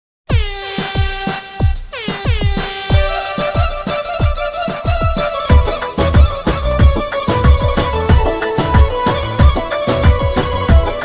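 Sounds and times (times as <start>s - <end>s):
deep kick drums: 1.6s - 11.0s.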